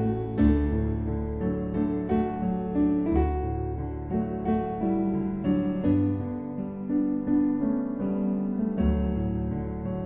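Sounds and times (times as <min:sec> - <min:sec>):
slow piano music: 0:00.0 - 0:10.0.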